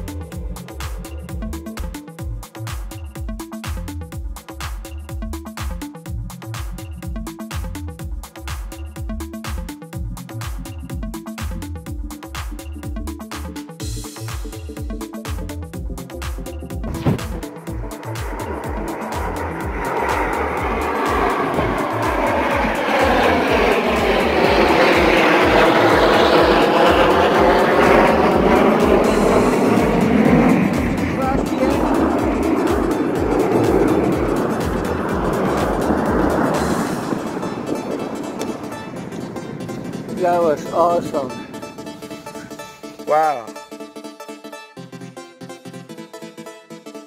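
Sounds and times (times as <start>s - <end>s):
electronic music with bass beat: 0.0s - 47.0s
aircraft passing overhead: 13.2s - 44.6s.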